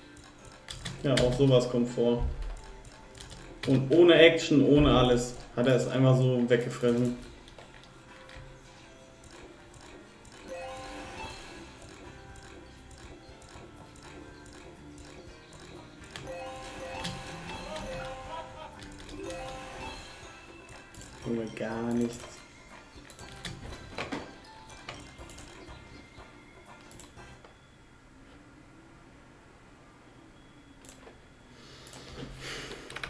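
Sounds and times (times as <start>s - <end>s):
jingly game music: 0.0s - 28.9s
slot reels clicking: 5.0s - 8.5s, 9.2s - 26.0s.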